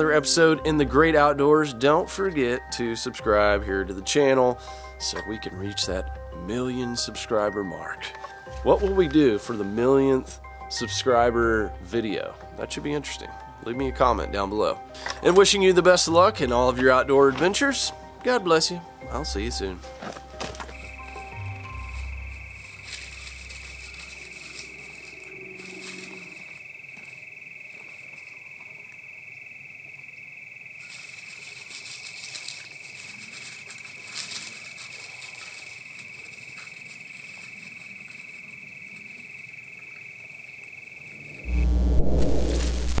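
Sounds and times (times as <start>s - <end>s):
low music notes: 5.0s - 24.2s
rustles and crackles: 16.6s - 28.9s, 30.8s - 39.5s, 41.0s - 43.0s
high-pitched drone: 41.3s - 43.0s
bass-heavy music sting: 41.4s - 43.0s.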